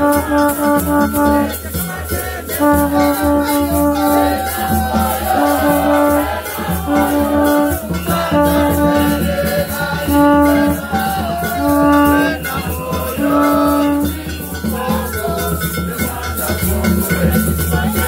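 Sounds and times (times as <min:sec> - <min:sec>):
conch shell blasts: 0:00.0 - 0:15.2
people singing: 0:00.0 - 0:18.0
rattles shaken rhythmically: 0:00.0 - 0:18.0.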